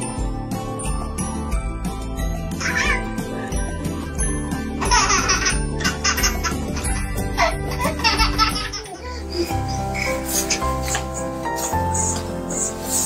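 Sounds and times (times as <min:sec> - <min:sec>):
background music: 0:00.0 - 0:13.0
baby laughing: 0:02.6 - 0:03.5, 0:04.8 - 0:11.1.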